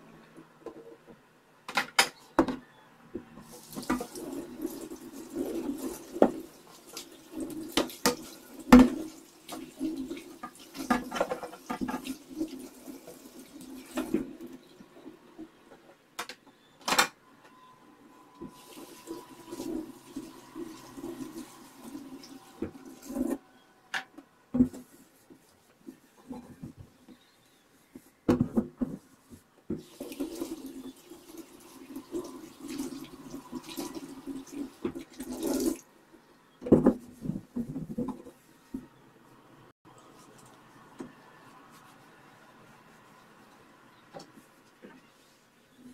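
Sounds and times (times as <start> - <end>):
cloth scrubbing a metal sink: 3.4 - 14.9, 18.4 - 23.6, 29.0 - 35.8, 41.4 - 45.9.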